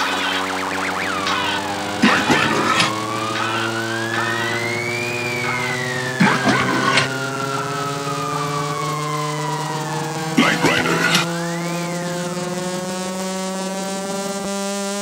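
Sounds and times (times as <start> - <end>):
sustained chord: 0.0 - 14.2
siren-like wail: 0.0 - 14.7.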